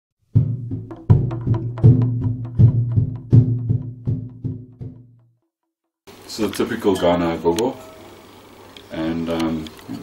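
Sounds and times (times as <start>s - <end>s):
low pitched drum strikes: 0.3s - 5.3s.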